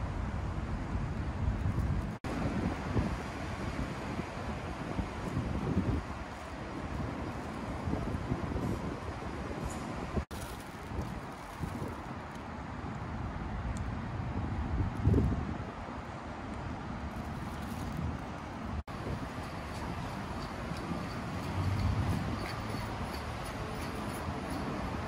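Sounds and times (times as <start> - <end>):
wind buffeting microphone: 0.0 - 12.4, 13.0 - 16.0, 17.0 - 25.0
city traffic hum: 0.0 - 25.0.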